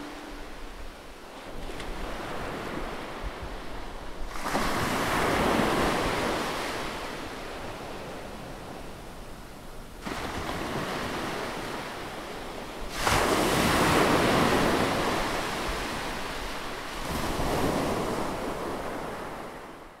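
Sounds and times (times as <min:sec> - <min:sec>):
ocean waves crashing on beach: 0:00.0 - 0:19.9.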